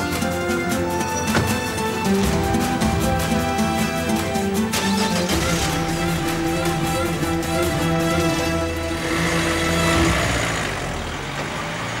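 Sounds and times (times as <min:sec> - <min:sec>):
music: 0:00.0 - 0:12.0
street traffic noise: 0:00.0 - 0:12.0
car engine running: 0:00.8 - 0:12.0.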